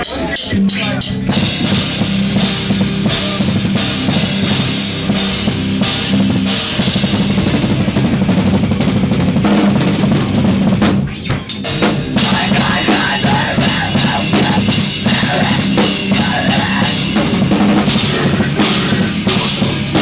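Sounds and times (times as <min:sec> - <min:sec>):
drum kit: 0:00.0 - 0:20.0
live rock band playing: 0:00.0 - 0:20.0.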